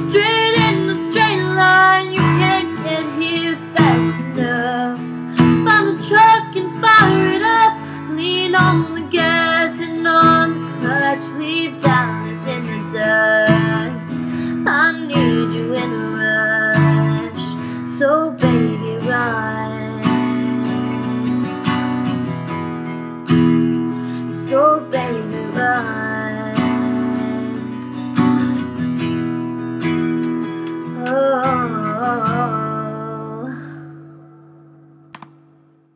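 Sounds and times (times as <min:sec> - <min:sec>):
acoustic guitar strumming: 0:00.0 - 0:35.9.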